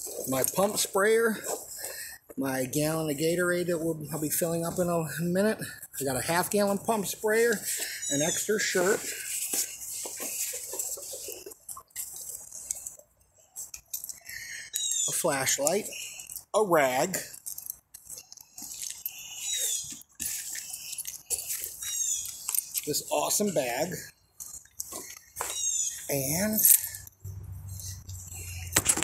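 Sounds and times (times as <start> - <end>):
backpack rustling: 0.0 - 2.0, 7.3 - 14.2
handling noises: 0.0 - 2.4, 6.5 - 16.7, 17.3 - 29.0.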